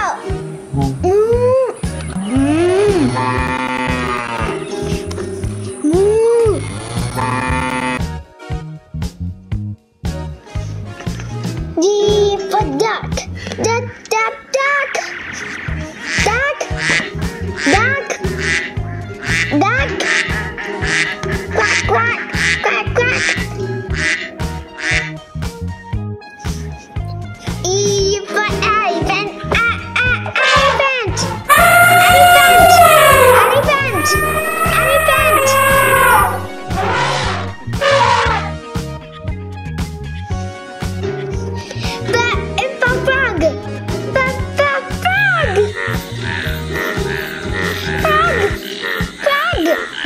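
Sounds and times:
background music with bass: 0:00.0 - 0:13.9, 0:15.6 - 0:48.8
duck quacking: 0:16.0 - 0:25.1, 0:31.6 - 0:38.5
backing music with steady beat: 0:31.5 - 0:42.1
cow mooing: 0:32.0 - 0:38.3.

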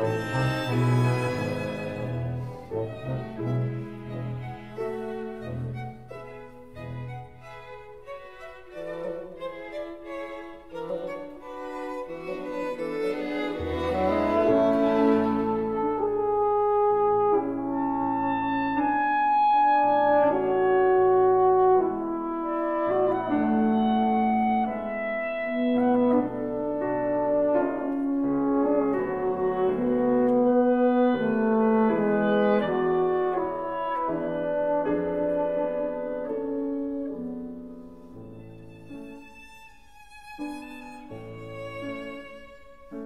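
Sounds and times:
french horn: 0:00.0 - 0:06.0, 0:12.2 - 0:38.2
slow classical serenade: 0:00.0 - 0:43.0
woodwinds: 0:00.0 - 0:43.0.

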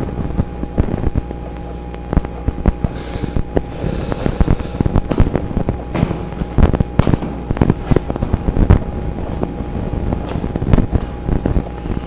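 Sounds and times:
wind buffeting on microphone: 0:01.9 - 0:12.0.

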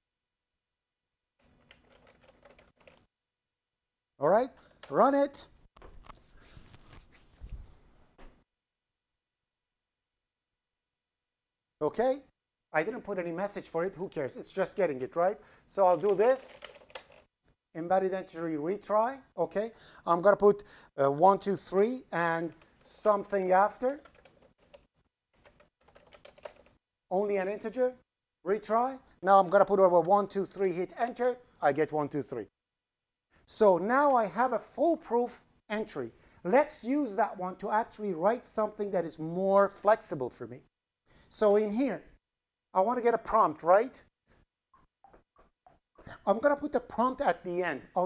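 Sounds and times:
typing on computer keyboard: 0:01.4 - 0:03.1, 0:16.0 - 0:17.3, 0:24.0 - 0:26.8.

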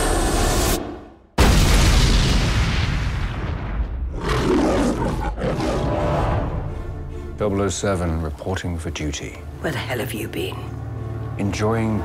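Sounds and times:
lion roaring: 0:04.1 - 0:06.6.

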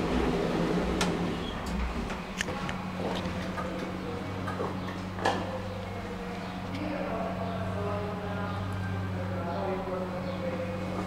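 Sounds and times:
elevator humming: 0:00.0 - 0:11.0.

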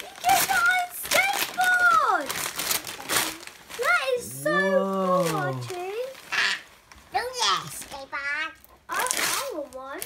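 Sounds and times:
short vocal sound: 0:04.2 - 0:05.8
wordless vocal exclamation: 0:04.2 - 0:06.0.

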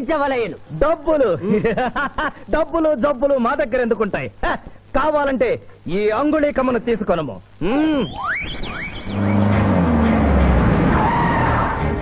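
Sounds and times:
background score: 0:07.4 - 0:12.0
rising whistle-like glides: 0:08.0 - 0:11.8
loud rumbling with deep drone: 0:09.1 - 0:12.0.

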